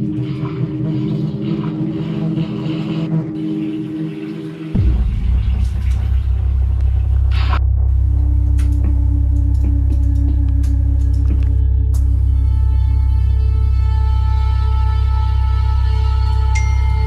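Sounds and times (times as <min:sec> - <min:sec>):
deep rumbling drone: 0:00.0 - 0:17.0
held low tones: 0:00.0 - 0:17.0.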